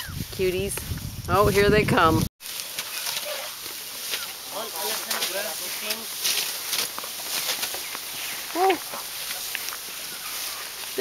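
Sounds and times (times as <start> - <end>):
tall grass rustling: 0.0 - 11.0.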